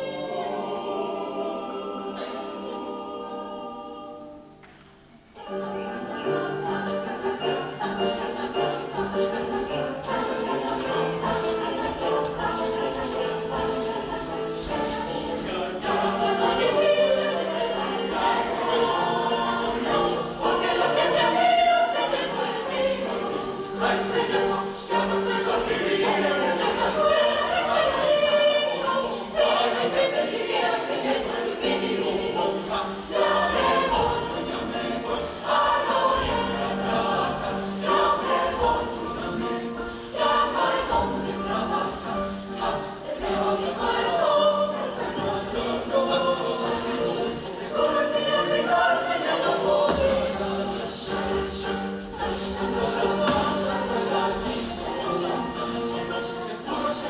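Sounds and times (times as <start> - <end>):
youth choir singing folk song: 0.0 - 57.0.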